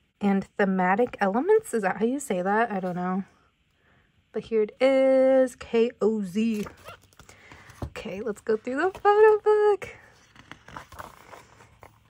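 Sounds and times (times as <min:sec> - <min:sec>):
paper pages turning: 0:08.6 - 0:12.0.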